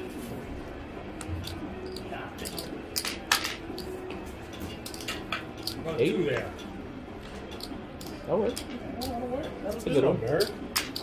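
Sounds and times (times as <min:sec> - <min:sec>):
cards and chips clicking: 0:01.2 - 0:06.5, 0:07.3 - 0:11.0.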